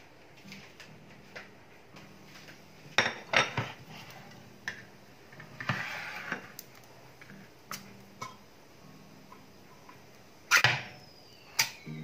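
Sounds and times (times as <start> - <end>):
metallic squeal of can lid: 5.6 - 6.4, 10.5 - 12.0.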